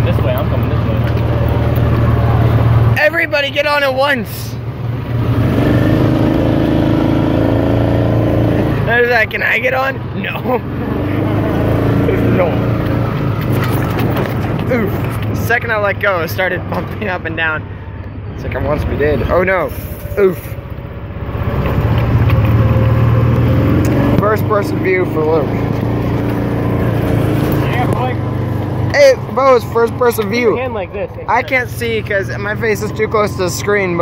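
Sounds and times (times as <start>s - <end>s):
vehicle engine droning: 0.0s - 34.0s.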